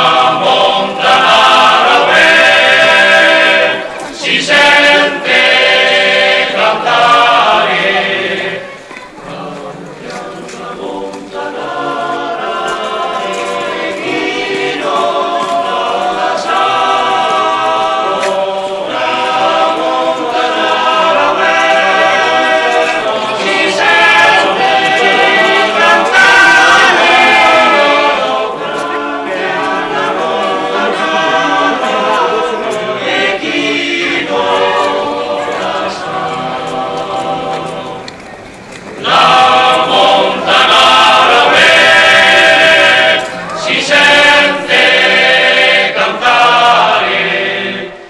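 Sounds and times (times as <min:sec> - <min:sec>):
choir singing unaccompanied: 0:00.0 - 0:48.0.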